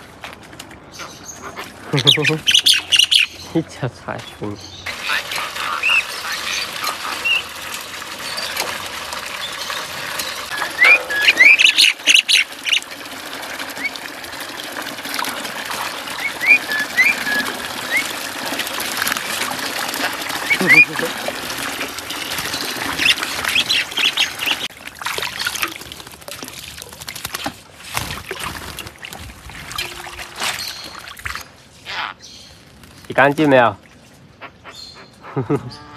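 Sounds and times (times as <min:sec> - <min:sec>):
tap water pouring into metal basin: 0:04.9 - 0:31.5
bird splashing in water: 0:04.9 - 0:31.6
rising whistled bird calls: 0:10.5 - 0:12.8, 0:16.2 - 0:18.1.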